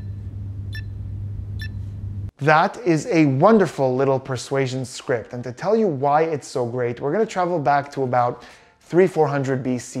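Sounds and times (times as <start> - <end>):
steady low hum: 0.0 - 2.4
keypad beeping: 1.6 - 1.8.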